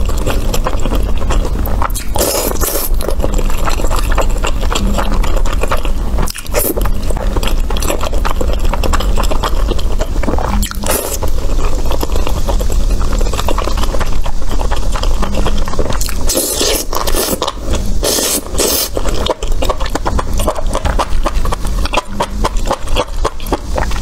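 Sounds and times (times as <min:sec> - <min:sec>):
slurps: 0:00.0 - 0:24.0
wet chewing: 0:00.0 - 0:24.0.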